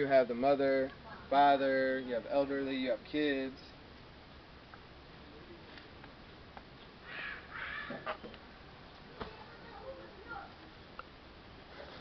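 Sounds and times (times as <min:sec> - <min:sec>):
harsh scratchy bird calls: 0:07.0 - 0:08.3.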